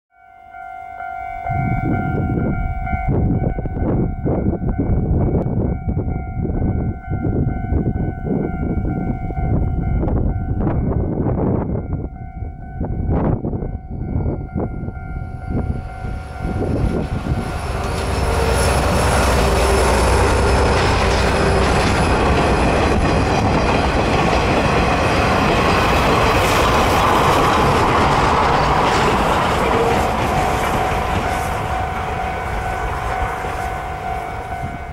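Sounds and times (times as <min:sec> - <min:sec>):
locomotive rumble: 0:12.9 - 0:34.9
train wheels clattering over rails: 0:16.6 - 0:34.0.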